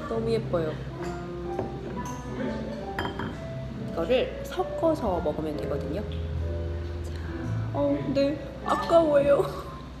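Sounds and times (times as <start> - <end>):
glass clinking on porcelain saucer: 1.0 - 3.4.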